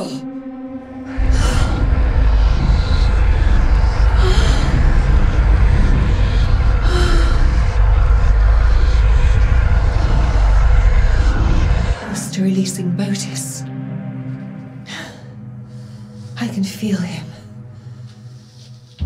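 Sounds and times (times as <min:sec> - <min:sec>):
deep rumbling drone: 0:00.0 - 0:19.0
eerie music chord: 0:00.0 - 0:19.0.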